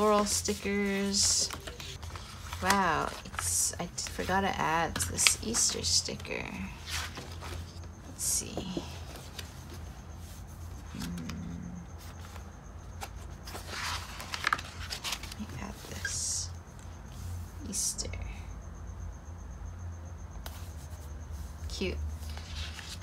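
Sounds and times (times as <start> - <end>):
paper pages rustling: 0.0 - 4.3, 4.9 - 7.9, 13.0 - 16.1, 22.2 - 23.0
low hummed murmur: 10.8 - 12.4.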